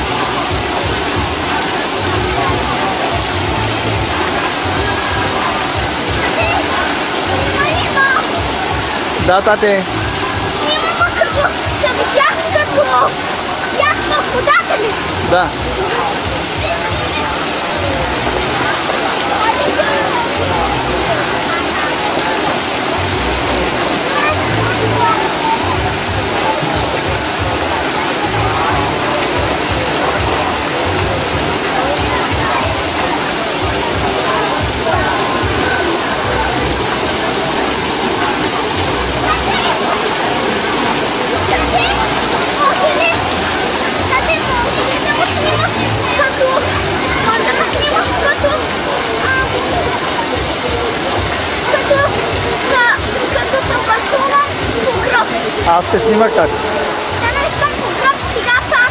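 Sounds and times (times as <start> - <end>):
crowd voices: 0.0 - 58.9
water rushing and splashing: 0.0 - 58.9.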